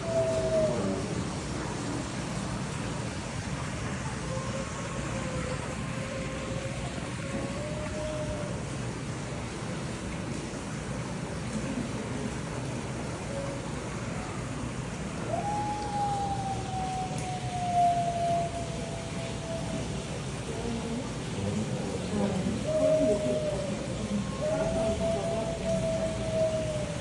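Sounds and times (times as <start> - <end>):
wolves howling: 0.0 - 1.3, 4.0 - 8.6, 15.2 - 27.0.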